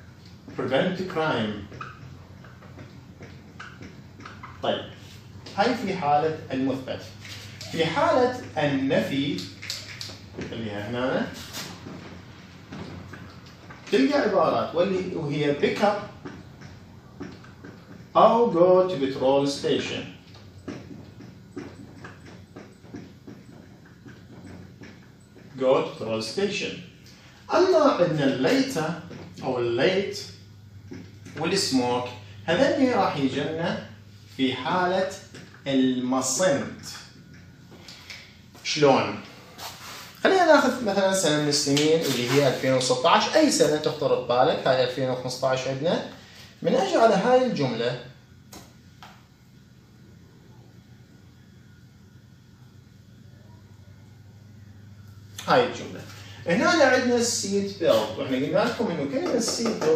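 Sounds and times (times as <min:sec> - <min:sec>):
marker pen writing on whiteboard: 0:20.4 - 0:26.4, 0:57.9 - 0:59.9.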